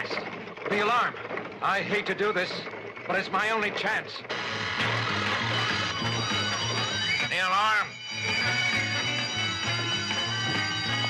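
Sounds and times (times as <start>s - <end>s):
alarm bell ringing: 4.3s - 11.0s
pulsing cartoon music: 4.3s - 11.0s.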